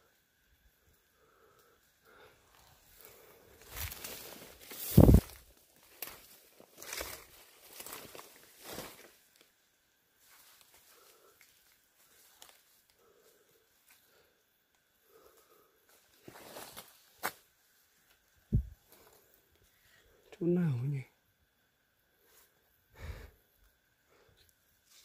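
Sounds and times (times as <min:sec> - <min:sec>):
rustling through undergrowth: 0:02.5 - 0:14.2, 0:15.1 - 0:19.8
footsteps in undergrowth: 0:03.6 - 0:09.5, 0:16.0 - 0:17.4.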